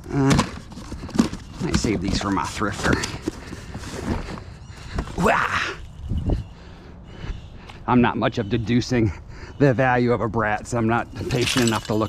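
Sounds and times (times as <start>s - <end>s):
cardboard rustling: 0.0s - 5.2s
cardboard box being handled: 0.3s - 4.4s.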